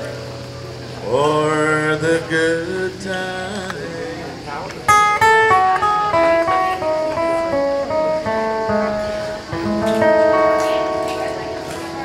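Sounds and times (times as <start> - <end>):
acoustic guitar picked notes: 0.0 - 12.0.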